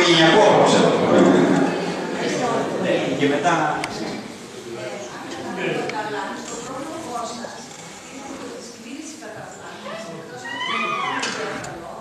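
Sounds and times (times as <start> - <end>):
audience talking: 0.0 - 12.0.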